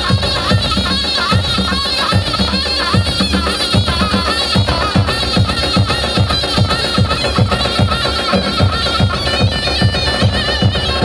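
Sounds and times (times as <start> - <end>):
large drum beating: 0.0 - 11.0
reedy wind instrument melody: 0.0 - 11.0.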